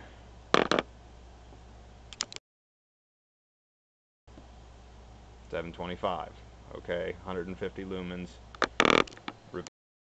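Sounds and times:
low steady hum: 0.0 - 2.4, 4.3 - 9.7
quick sharp clicks: 2.1 - 2.4.

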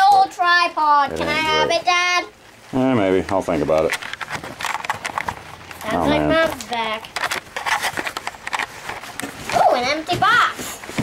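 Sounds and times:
packaging crackling and rustling: 3.0 - 11.0.

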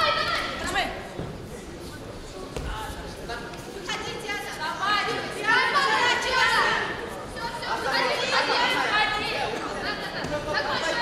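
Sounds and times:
people talking and calling out: 0.0 - 11.0.

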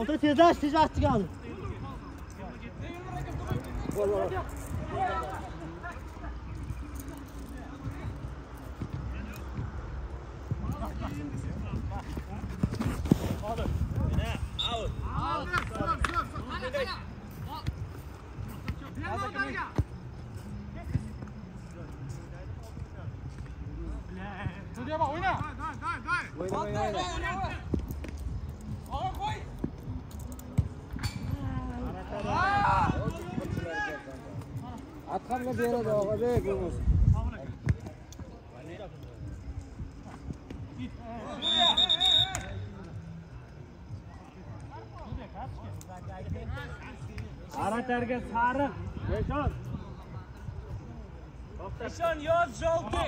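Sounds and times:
short high whistle: 14.5 - 15.0, 41.3 - 42.7.

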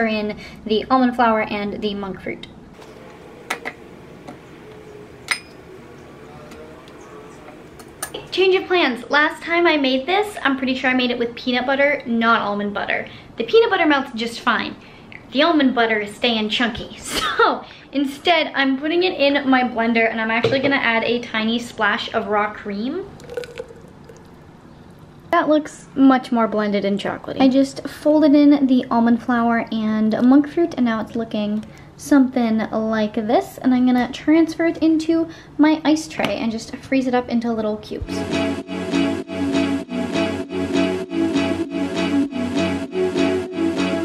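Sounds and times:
spoon clinking on ceramic bowl: 5.3 - 5.6, 23.2 - 24.2
small drips and splashes: 23.1 - 24.4
cream poured into blender jar: 23.2 - 24.4.

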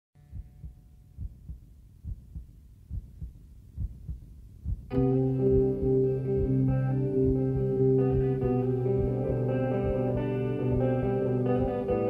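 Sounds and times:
heartbeat thumps: 0.2 - 12.0.

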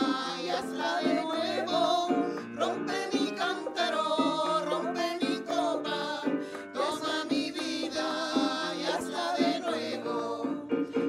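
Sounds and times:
electronic keyboard: 0.0 - 11.0
women's choir singing a hymn: 0.0 - 11.0.

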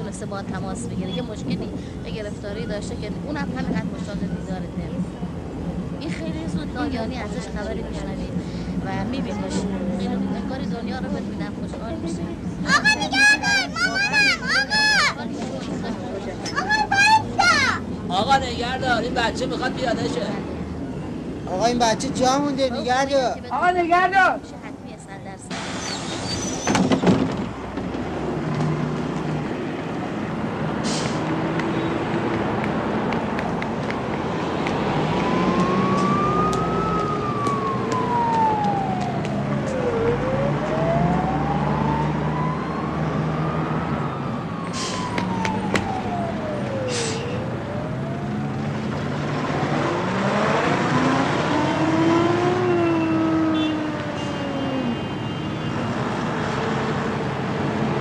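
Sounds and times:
city traffic engines: 0.0 - 58.0
wailing siren: 34.4 - 48.9, 49.9 - 58.0.

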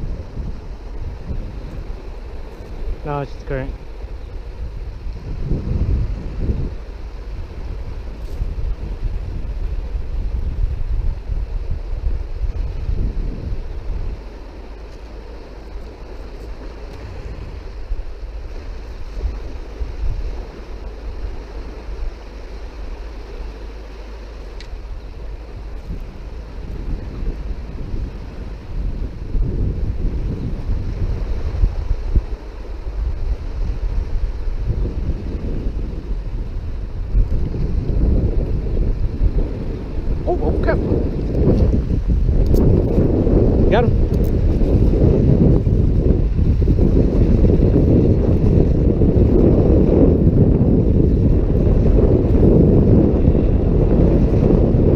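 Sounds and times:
wind buffeting microphone: 0.0 - 54.9.

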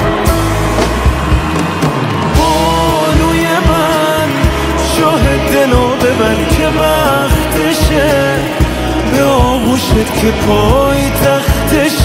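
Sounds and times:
instrumental band music: 0.0 - 12.0.

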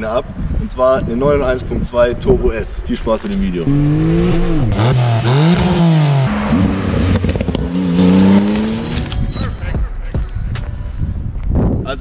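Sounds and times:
car engine revving: 3.7 - 9.2.

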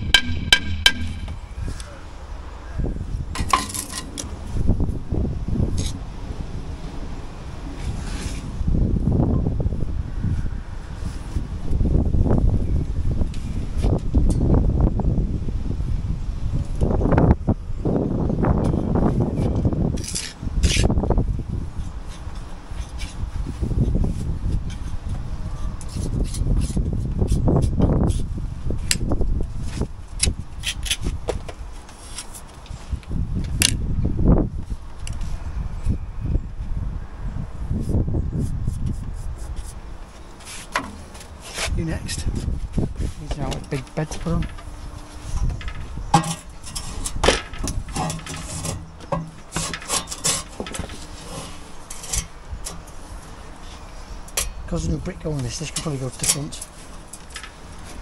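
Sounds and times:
metal tools clicking and scraping: 45.5 - 53.1, 55.4 - 57.8.

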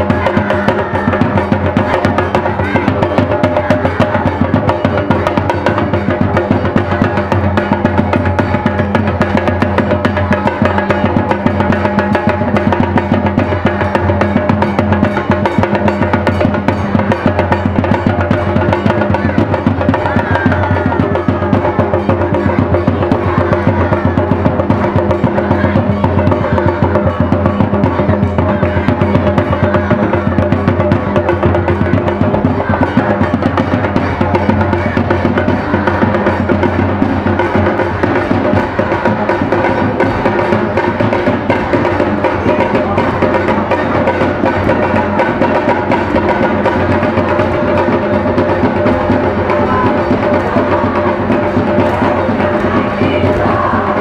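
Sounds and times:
drum-led music: 0.0 - 54.0.

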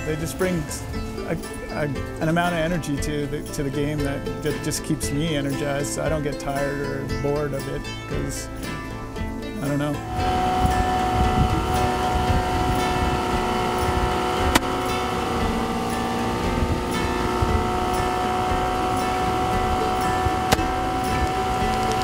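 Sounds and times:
water rushing: 8.4 - 22.0
outboard motor hum: 8.5 - 22.0.

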